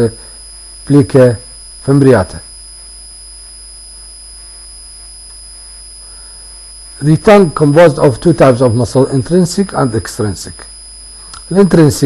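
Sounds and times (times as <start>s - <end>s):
high-pitched electrical whine: 0.0s - 12.0s
low electrical hum: 0.0s - 12.0s
person speaking: 0.9s - 2.5s, 7.0s - 10.7s, 11.3s - 12.0s.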